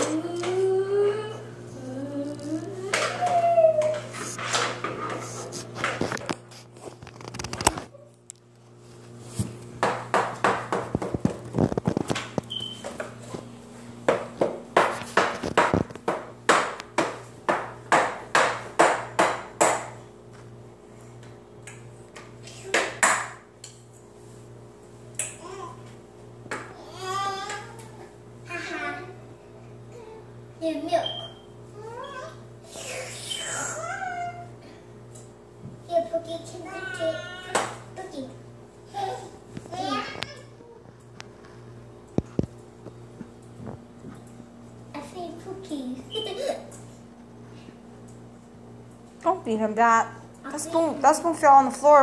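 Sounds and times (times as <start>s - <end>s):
young children vocalizing: 0.0s - 4.1s, 31.8s - 34.7s.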